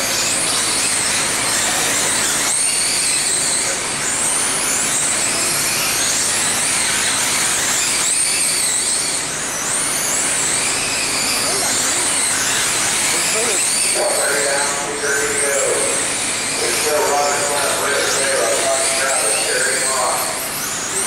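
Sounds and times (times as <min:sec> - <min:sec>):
electric motors whining: 0:00.0 - 0:21.0
steady noisy background: 0:00.0 - 0:21.0.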